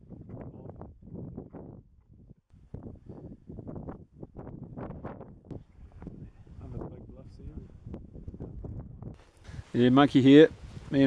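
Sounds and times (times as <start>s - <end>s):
wind gusting over microphone: 0.0s - 11.0s.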